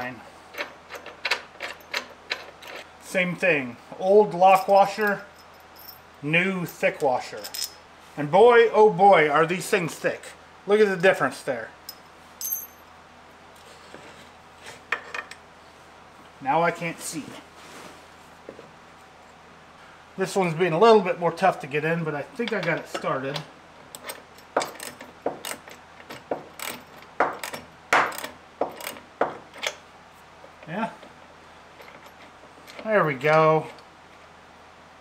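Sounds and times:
metal bolt and washers clinking: 0:00.5 - 0:02.9, 0:04.3 - 0:07.8, 0:11.9 - 0:12.9, 0:22.4 - 0:29.8.

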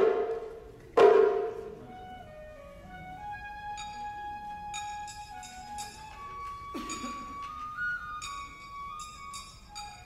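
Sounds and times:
taiko drum stroke: 0:00.0 - 0:01.8.

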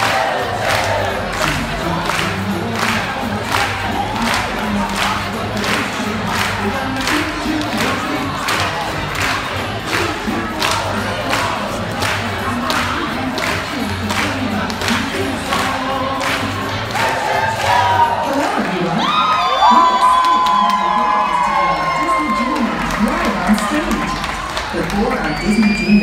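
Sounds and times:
audience clapping in rhythm: 0:00.0 - 0:26.0
crowd voices: 0:00.0 - 0:26.0
music: 0:00.0 - 0:26.0.

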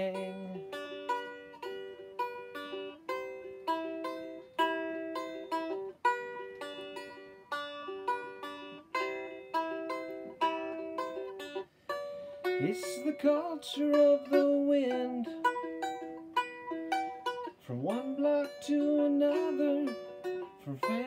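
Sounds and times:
strum stick picked melody: 0:00.0 - 0:21.0.

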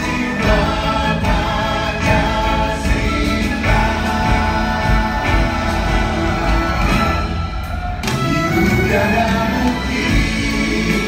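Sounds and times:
orchestra and band playing: 0:00.0 - 0:11.0.

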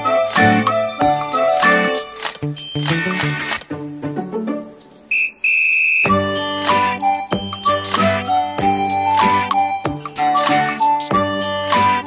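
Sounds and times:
background instrumental music: 0:00.0 - 0:05.1, 0:06.1 - 0:12.0
high whistle toots: 0:05.1 - 0:06.8.

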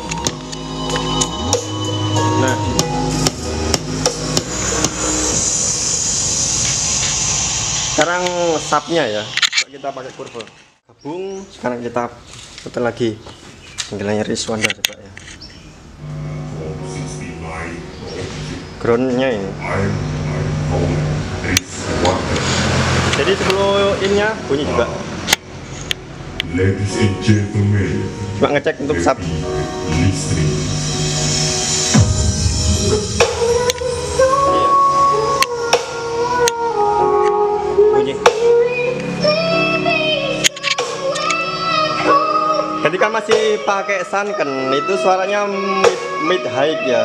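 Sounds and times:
song through a loudspeaker: 0:00.0 - 0:05.4, 0:26.4 - 0:47.0
amplifier mains hum: 0:15.7 - 0:22.2, 0:27.8 - 0:35.7.

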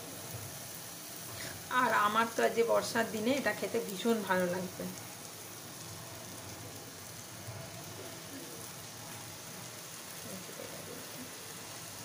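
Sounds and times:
rice sizzling in wok: 0:00.0 - 0:12.0.

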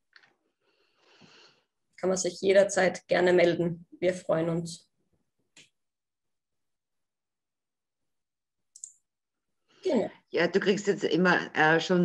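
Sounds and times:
woman speaking: 0:09.8 - 0:12.0.

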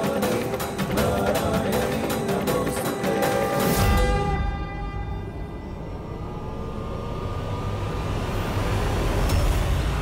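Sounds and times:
low rumbling drone: 0:03.7 - 0:10.0.

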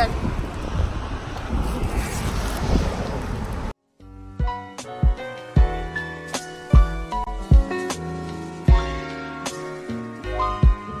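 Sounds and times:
wind buffeting microphone: 0:00.0 - 0:03.8
background music: 0:03.9 - 0:11.0.

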